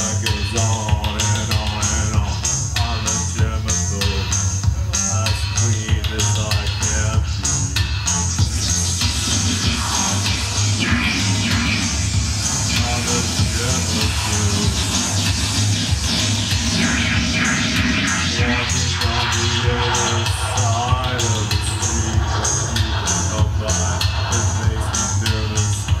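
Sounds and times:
clicking beat: 0:00.0 - 0:26.0
live electronic music: 0:00.0 - 0:26.0
steady low bass: 0:00.0 - 0:26.0.

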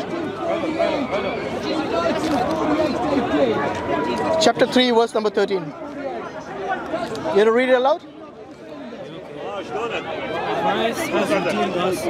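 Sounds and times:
crowd chatter: 0:00.0 - 0:12.0.

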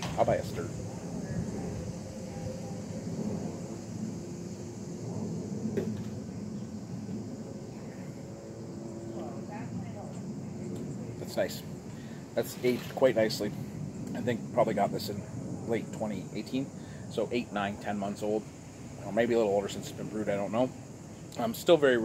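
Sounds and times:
faint high-pitched drone: 0:00.0 - 0:12.6
outdoor background hum: 0:00.0 - 0:22.0.

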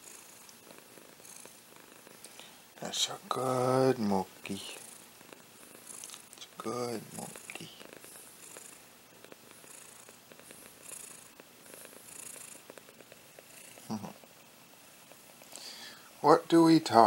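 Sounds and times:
cat purring: 0:00.0 - 0:17.0.

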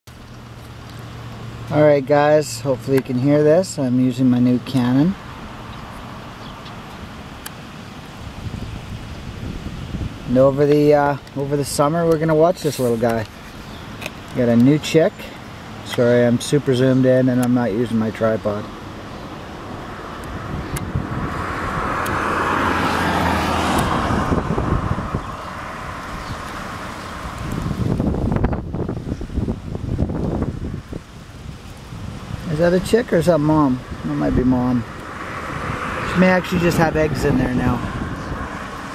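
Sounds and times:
vehicle passing by: 0:08.0 - 0:28.9, 0:31.8 - 0:38.9
wind on microphone: 0:08.1 - 0:12.0, 0:19.6 - 0:38.9.

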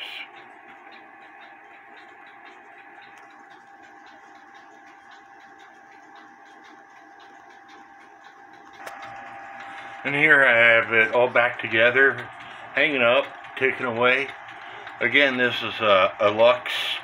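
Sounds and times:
clock movement ticking quickly: 0:00.0 - 0:17.0.

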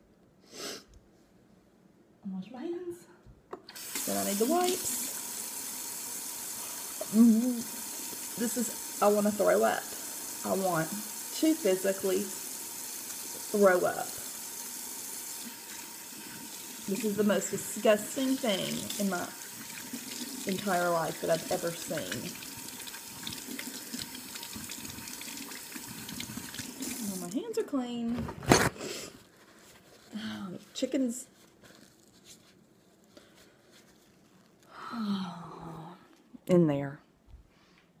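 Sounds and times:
hands being washed: 0:03.7 - 0:27.4
wipe rubbing on hands: 0:31.3 - 0:34.6.

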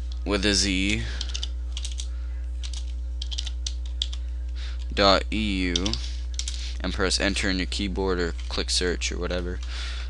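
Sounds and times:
low electrical hum: 0:00.0 - 0:10.0
computer keyboard typing: 0:00.9 - 0:04.2, 0:05.7 - 0:06.6.

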